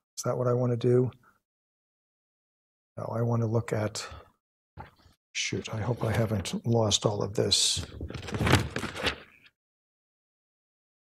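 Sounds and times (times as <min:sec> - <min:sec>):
paper rustling: 0:07.8 - 0:09.5.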